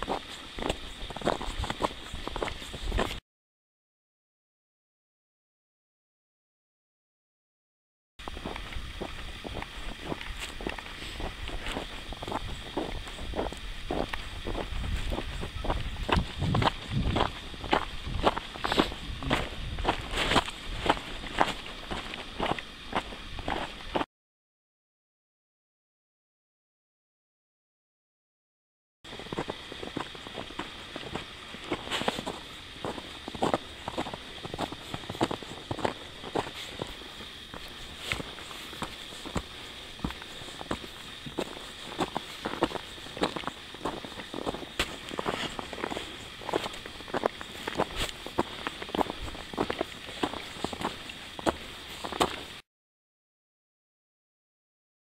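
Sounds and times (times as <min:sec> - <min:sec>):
footsteps crunching on snow: 0:00.0 - 0:03.2, 0:08.2 - 0:24.0, 0:29.1 - 0:52.6
low wind rumble on microphone: 0:08.2 - 0:24.0.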